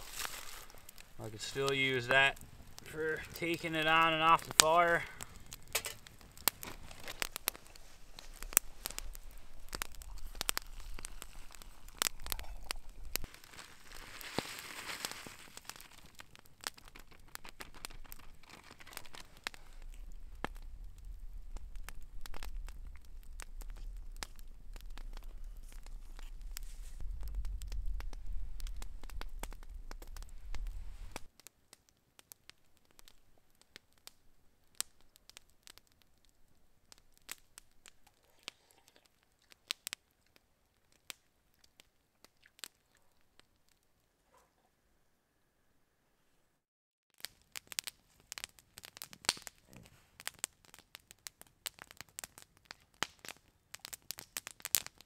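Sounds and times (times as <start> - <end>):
campfire crackling and popping: 0.0 - 44.5, 47.1 - 55.0
water boiling in a pot: 4.7 - 30.3, 37.3 - 43.6.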